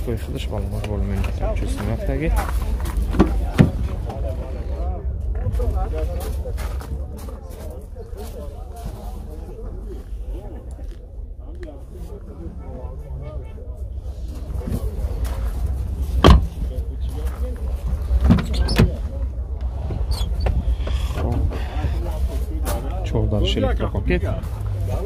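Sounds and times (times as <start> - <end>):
indistinct voices talking: 0.0 - 25.0
low rumble: 0.0 - 25.0.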